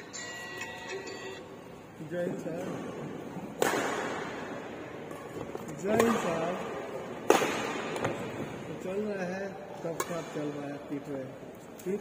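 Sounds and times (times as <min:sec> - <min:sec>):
racket striking shuttlecock: 0:03.5 - 0:08.3.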